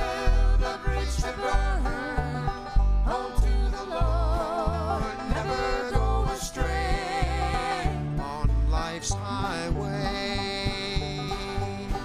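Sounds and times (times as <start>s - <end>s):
person singing with vibrato: 0.0s - 12.0s
plucked string instruments: 0.0s - 12.0s
repeated bass notes: 0.0s - 12.0s.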